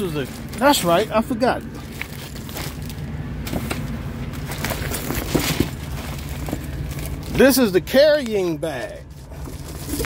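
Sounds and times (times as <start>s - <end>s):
plastic wrapping crinkling: 0.0s - 10.0s.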